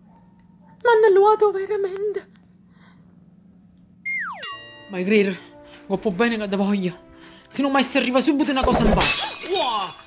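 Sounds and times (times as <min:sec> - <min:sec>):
tone sliding down in pitch: 0:04.0 - 0:04.7
ringing chord: 0:04.1 - 0:07.4.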